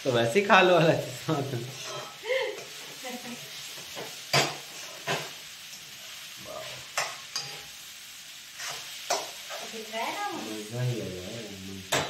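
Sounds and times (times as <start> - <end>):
frying hiss: 0.0 - 12.0
metal spoon scraping pan: 1.7 - 5.3, 6.8 - 7.7, 8.6 - 9.8.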